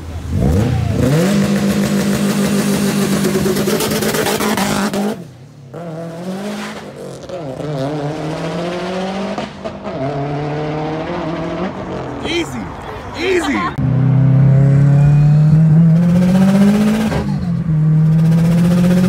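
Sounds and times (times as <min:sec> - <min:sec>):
car engine revving: 0:00.2 - 0:12.2, 0:13.8 - 0:19.0.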